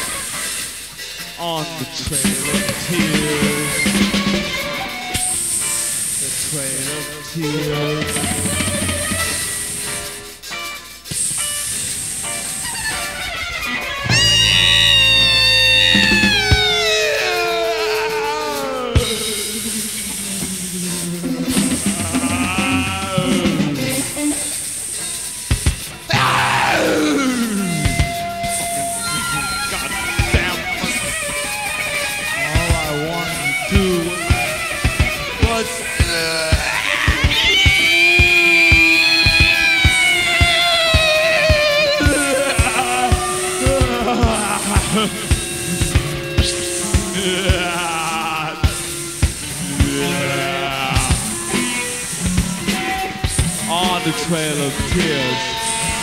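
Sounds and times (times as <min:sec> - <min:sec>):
rock band playing live: 0:00.0 - 0:56.0
held electric guitar notes: 0:01.9 - 0:56.0
bass drum beats: 0:14.1 - 0:17.0, 0:25.5 - 0:31.2, 0:32.4 - 0:54.2.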